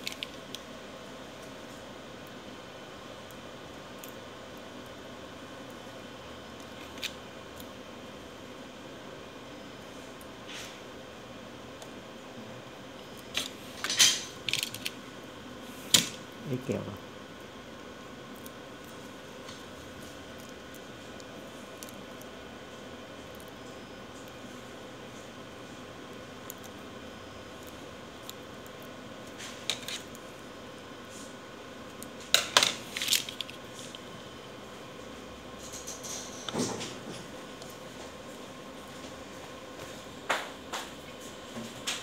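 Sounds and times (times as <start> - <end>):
steady background hum: 0.0 - 42.0.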